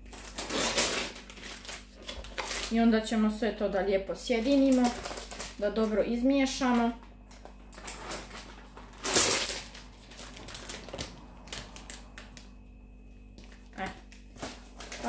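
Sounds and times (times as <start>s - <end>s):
plastic packaging crinkling: 0.0s - 15.0s.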